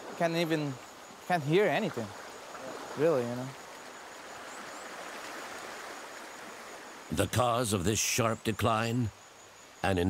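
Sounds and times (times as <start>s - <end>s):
stream flowing over stones: 0.0s - 7.3s.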